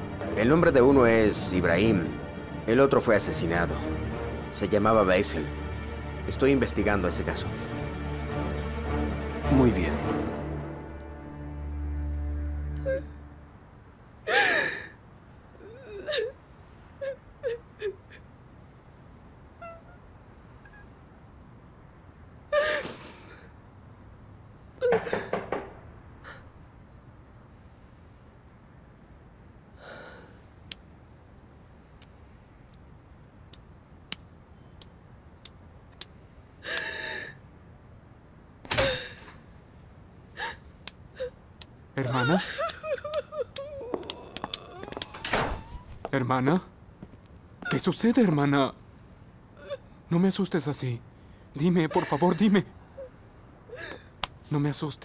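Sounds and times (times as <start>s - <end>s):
woman sobbing: 12.7s - 13.3s, 14.3s - 15.0s, 15.6s - 16.4s, 17.0s - 18.3s, 22.5s - 23.2s, 40.4s - 41.4s, 42.0s - 46.0s, 49.6s - 50.0s, 51.8s - 54.1s
woman whimpering: 12.8s - 13.2s, 42.0s - 46.1s, 49.6s - 49.9s, 51.9s - 52.4s.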